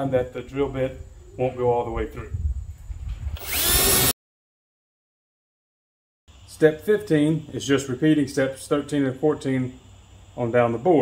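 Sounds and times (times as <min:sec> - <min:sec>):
cordless drill whine: 0:03.3 - 0:04.2.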